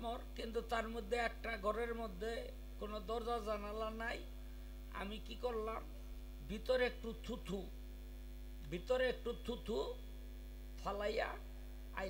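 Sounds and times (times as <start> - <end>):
man speaking into a microphone: 0.0 - 4.3, 4.9 - 7.7, 8.7 - 10.0, 10.8 - 11.4
electrical mains hum: 0.0 - 12.0.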